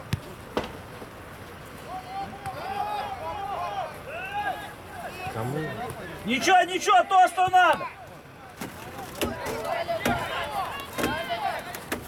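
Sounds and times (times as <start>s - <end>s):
voices calling and shouting: 1.6s - 12.0s.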